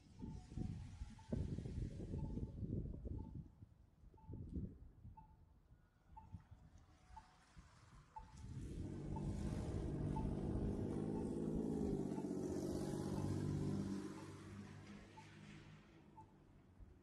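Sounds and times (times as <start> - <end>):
pedestrian crossing signal beeps: 2.1 - 2.5, 3.1 - 3.4, 8.2 - 15.4
vehicle driving past on wet street: 7.3 - 16.2.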